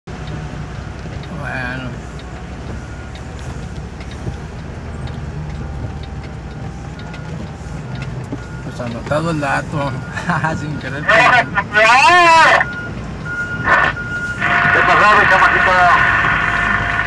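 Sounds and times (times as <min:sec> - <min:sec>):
vehicle engine low rumble: 0:00.1 - 0:17.0.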